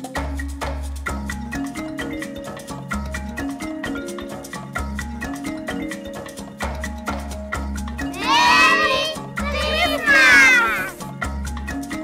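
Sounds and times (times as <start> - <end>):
music with bass and clicking percussion: 0.0 - 12.0
child squealing: 8.2 - 11.0.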